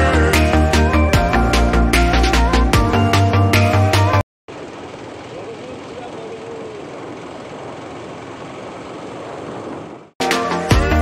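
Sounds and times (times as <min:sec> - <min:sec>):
music: 0:00.0 - 0:04.2, 0:10.2 - 0:11.0
motorcycle road noise: 0:04.5 - 0:10.2.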